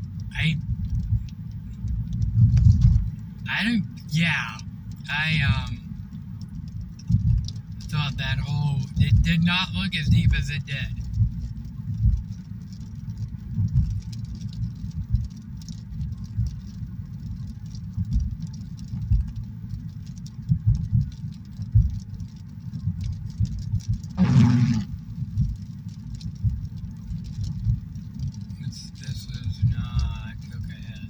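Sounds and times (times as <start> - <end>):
car road noise rumble: 0.0 - 31.0
faint light ticking: 0.0 - 31.0.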